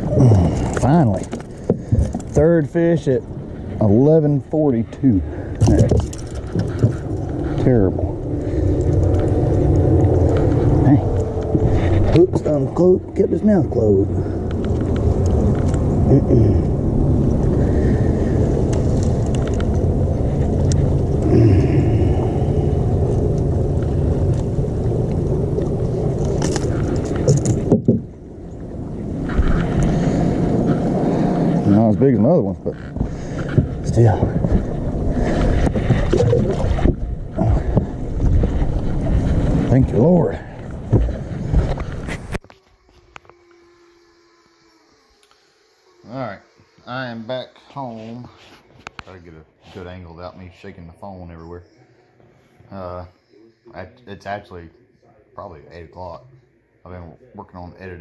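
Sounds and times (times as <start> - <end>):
outboard motor running: 0.0 - 42.3
faint steady hum: 0.0 - 58.0
wind: 0.0 - 58.0.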